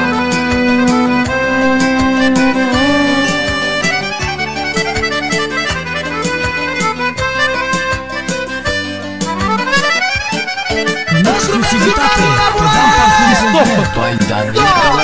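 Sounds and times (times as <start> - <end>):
melodic line with bending notes: 0.0 - 13.6
band playing instrumental music: 0.0 - 13.9
accordion-like fast runs: 0.0 - 15.0.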